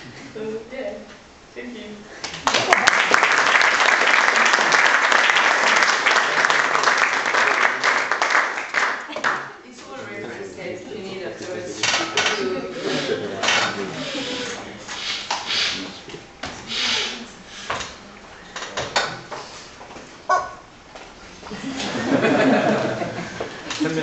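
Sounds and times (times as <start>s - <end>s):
low voices in a hall: 0.0s - 19.8s.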